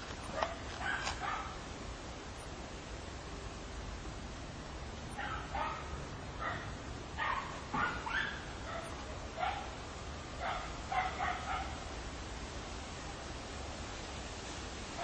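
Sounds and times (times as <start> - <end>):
dog yapping: 0.4 - 1.5, 7.2 - 9.6.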